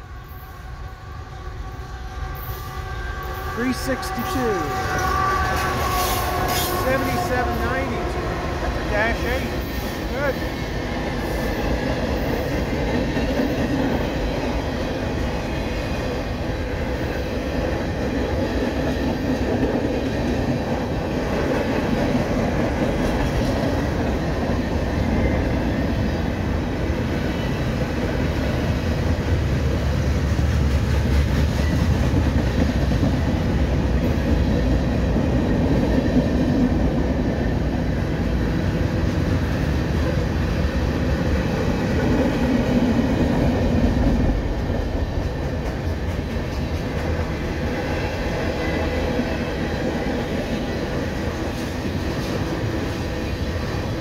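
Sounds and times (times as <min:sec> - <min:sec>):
freight train wheels on rails: 0:00.0 - 0:54.0.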